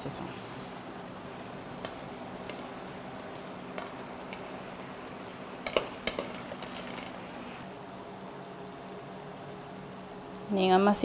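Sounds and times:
sauce sizzling in a pan: 0:00.1 - 0:11.0.

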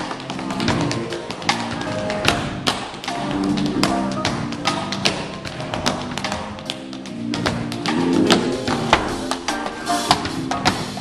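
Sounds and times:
tap shoes on wooden floor: 0:00.0 - 0:11.0
live band with bass and drums: 0:07.7 - 0:11.0.

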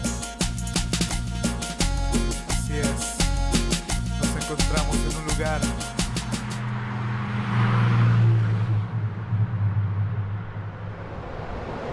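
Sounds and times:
motor vehicle rumble: 0:05.8 - 0:11.9.

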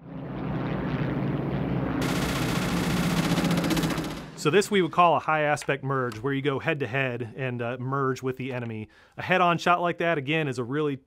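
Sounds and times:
piston aircraft engines droning: 0:00.0 - 0:06.2
machine-gun fire: 0:02.0 - 0:04.6.

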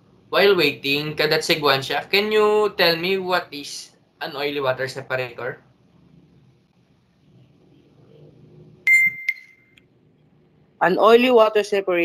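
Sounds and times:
electronic ding: 0:08.9 - 0:09.8.

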